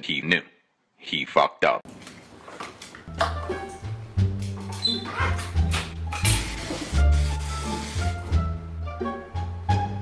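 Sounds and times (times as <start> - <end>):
fire extinguisher spraying hiss: 6.2 - 8.4.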